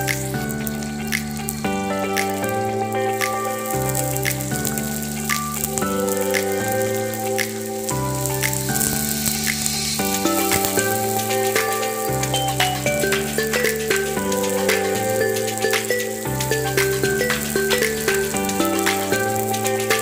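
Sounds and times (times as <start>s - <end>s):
sustained chord music: 0.0s - 20.0s
onions sizzling in hot oil: 2.2s - 20.0s.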